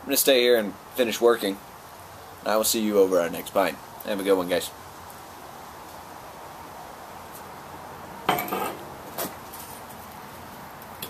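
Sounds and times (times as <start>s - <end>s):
glass clinking on table: 8.3s - 8.8s.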